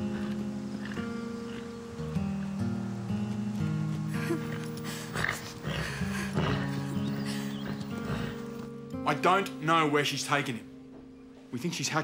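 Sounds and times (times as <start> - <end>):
background music with held tones: 0.0 - 12.0
horse hoof steps on dirt: 2.4 - 8.8.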